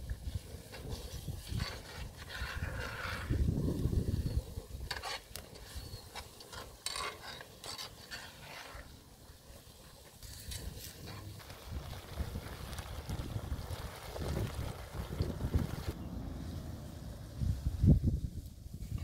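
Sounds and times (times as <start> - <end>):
wind rumble on microphone: 0.0 - 5.0, 10.5 - 19.0
metal spatula scraping frying pan: 0.7 - 3.5, 4.8 - 9.0.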